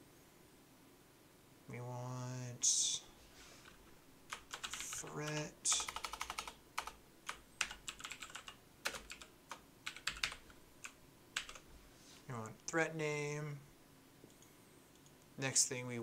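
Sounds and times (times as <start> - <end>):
typing on computer keyboard: 3.6 - 11.6.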